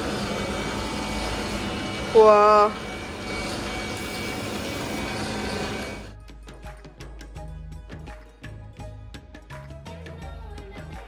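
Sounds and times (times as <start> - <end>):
workshop machinery noise: 0.0 - 6.1
background music: 4.5 - 11.0.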